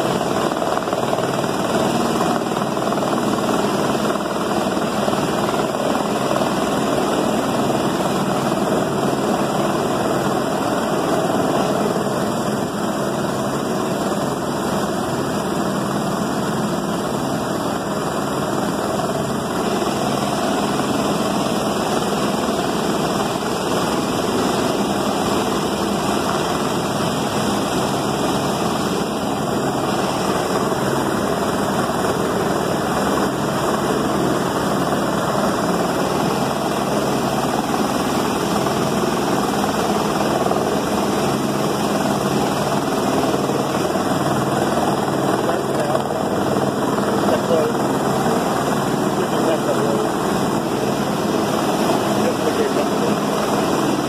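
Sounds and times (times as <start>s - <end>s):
helicopter hovering: 0.0s - 54.0s
rushing floodwater: 0.0s - 54.0s.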